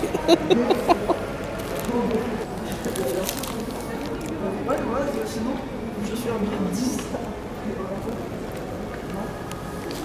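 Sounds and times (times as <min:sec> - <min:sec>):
indistinct voices talking: 0:00.0 - 0:04.3.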